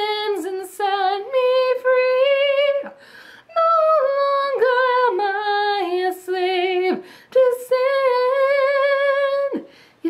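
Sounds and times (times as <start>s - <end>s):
woman singing unaccompanied: 0.0s - 9.7s.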